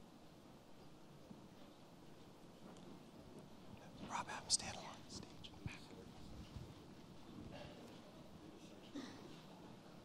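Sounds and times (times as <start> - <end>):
whispered speech into microphone: 2.5 - 10.0.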